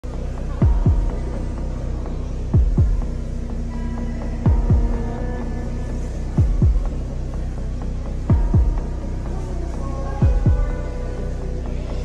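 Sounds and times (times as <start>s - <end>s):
low drone with held tones: 0.0s - 12.0s.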